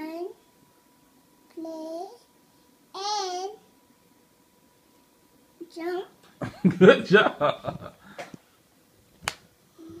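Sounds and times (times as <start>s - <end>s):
hand slap: 9.2s - 9.4s.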